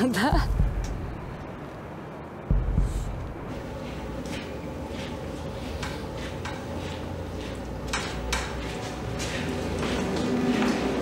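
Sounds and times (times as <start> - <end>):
low steady hum: 0.0 - 11.0
footsteps on hard floor: 2.5 - 11.0.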